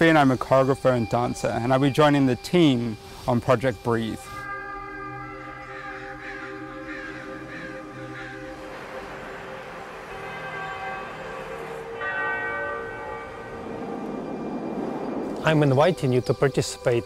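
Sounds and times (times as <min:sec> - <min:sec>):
church bells ringing: 0:00.0 - 0:17.0.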